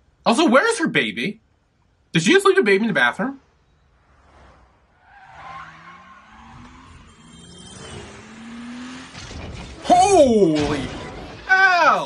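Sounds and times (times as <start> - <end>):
car engine accelerating: 3.9 - 10.0.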